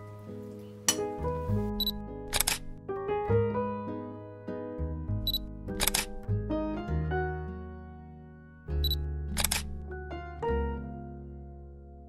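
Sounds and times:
gentle background music: 0.0s - 12.0s
camera shutter double click: 2.3s - 2.7s, 5.8s - 6.2s, 8.9s - 9.8s.

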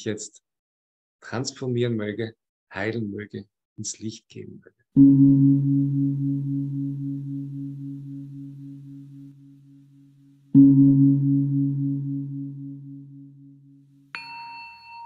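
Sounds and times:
singing bowl ringing: 5.0s - 15.0s.

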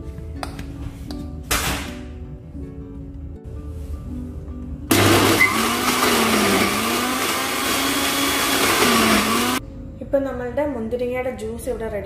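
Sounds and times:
blender motor running: 4.9s - 9.6s.

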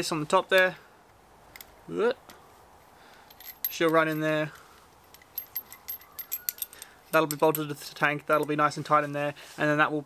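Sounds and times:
metal fittings clinking: 3.1s - 8.7s.

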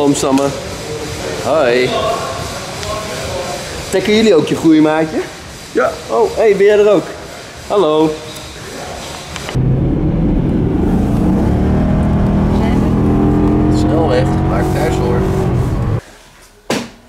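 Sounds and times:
road and tyre noise: 9.4s - 16.0s
car engine drone: 9.5s - 16.0s.

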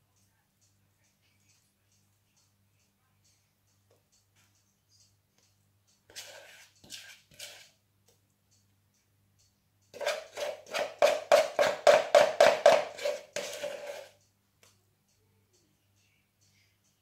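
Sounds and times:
utensil scraping ceramic bowl: 6.1s - 7.8s, 10.0s - 14.2s.

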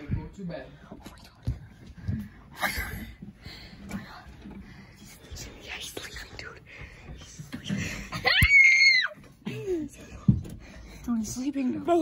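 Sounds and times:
hushed whispering: 5.0s - 7.8s.

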